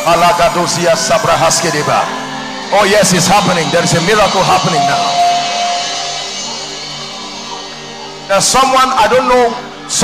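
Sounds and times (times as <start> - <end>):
live band sustained chords: 0.0 - 10.0
clear held note: 3.1 - 7.4.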